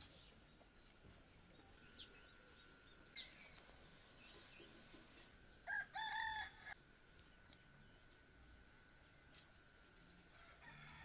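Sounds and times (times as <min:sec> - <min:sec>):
small birds chirping: 0:00.0 - 0:05.6
rooster crowing: 0:05.6 - 0:06.8, 0:10.4 - 0:11.0.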